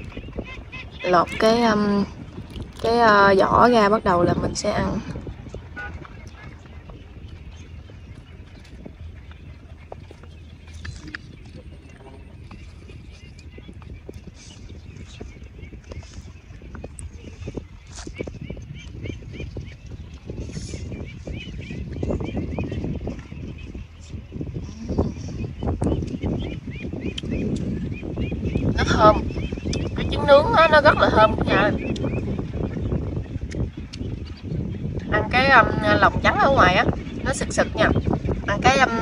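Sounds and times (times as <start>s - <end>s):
low steady rumble: 0.0s - 39.0s
mouth sounds of eating: 24.6s - 26.2s.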